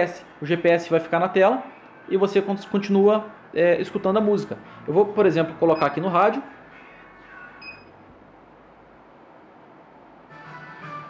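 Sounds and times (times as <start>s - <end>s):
room tone: 0.0s - 11.0s.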